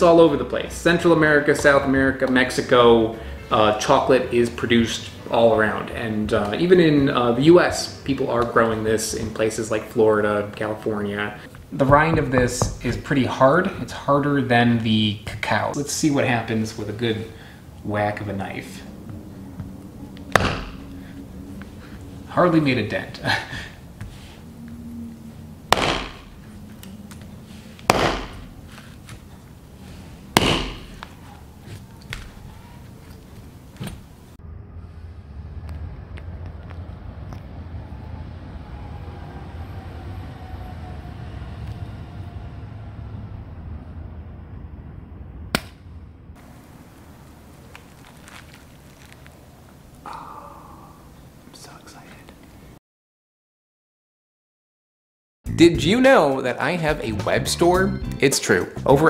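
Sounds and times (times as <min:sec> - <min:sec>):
knife whacking hard fruit rind: 0:20.4 - 0:20.8, 0:25.7 - 0:26.3, 0:27.9 - 0:28.4, 0:30.4 - 0:31.0
man whispering exclamation: 0:50.0 - 0:52.3.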